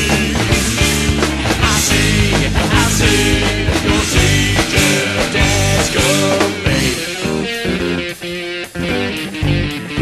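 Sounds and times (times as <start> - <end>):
person singing: 0.0 - 8.0
bass guitar: 0.0 - 10.0
electric guitar chords: 0.0 - 10.0.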